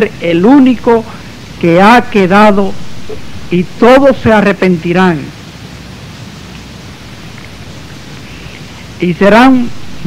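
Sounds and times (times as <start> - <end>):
man speaking: 0.0 - 5.3, 9.0 - 9.8
background recording hiss: 0.0 - 10.0.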